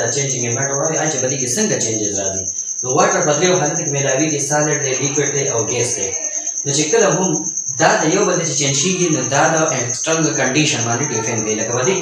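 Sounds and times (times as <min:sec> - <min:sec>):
high-pitched pulsing trill: 0:00.0 - 0:12.0
man lecturing: 0:00.0 - 0:12.0.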